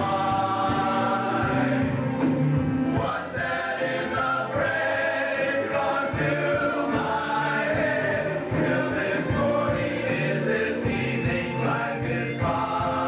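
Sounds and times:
group singing with rock band: 0.0s - 13.0s.

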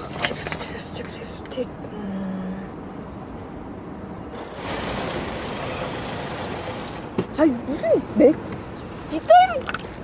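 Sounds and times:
vehicle rumble with hiss: 0.0s - 9.7s.

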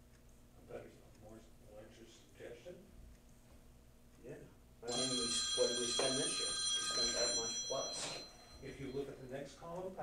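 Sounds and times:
men talking: 0.6s - 2.9s, 4.2s - 10.0s
high-pitched electronic ringing tone: 4.8s - 9.3s.

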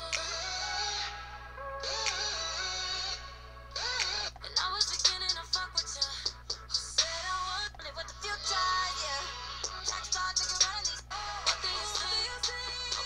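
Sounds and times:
drum beat: 4.5s - 7.0s.

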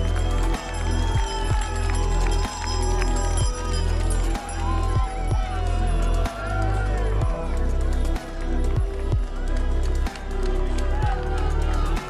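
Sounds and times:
background music with deep bass: 0.0s - 12.0s.

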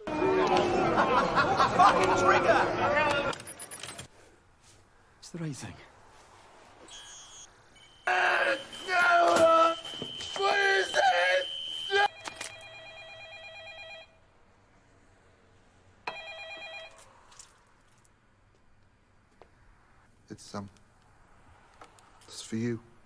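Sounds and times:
electronic telephone ringing: 11.4s - 14.2s, 16.1s - 17.1s.

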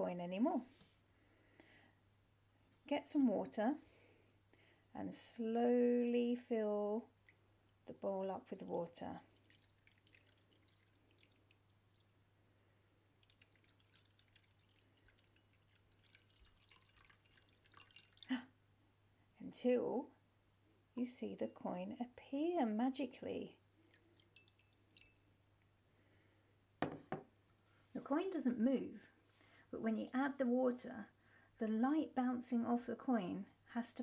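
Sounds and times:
water trickling into a bowl: 7.1s - 18.6s, 23.1s - 25.7s.

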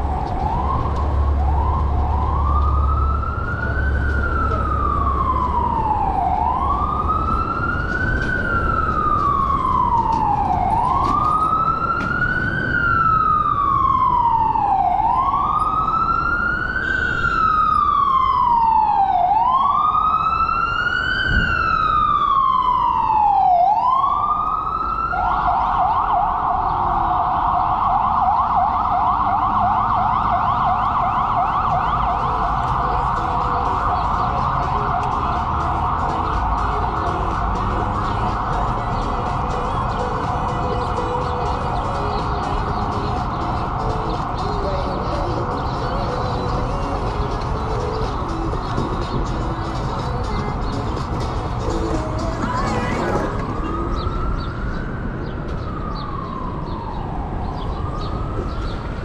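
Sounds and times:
emergency vehicle siren: 0.0s - 59.0s
wind and road rumble: 0.0s - 59.0s.

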